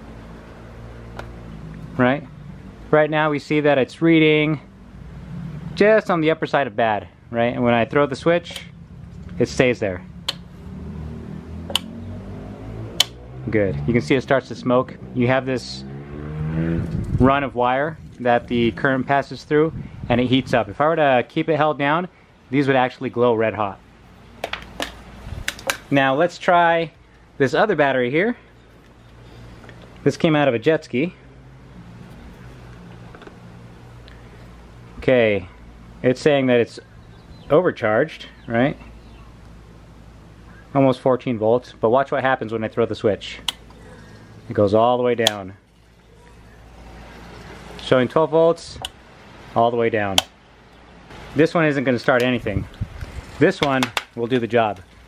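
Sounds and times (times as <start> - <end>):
low mechanical hum: 16.8 - 53.5.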